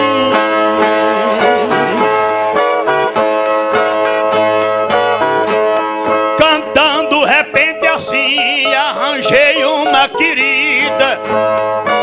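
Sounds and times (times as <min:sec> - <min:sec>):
plucked guitars playing: 0:00.0 - 0:12.0.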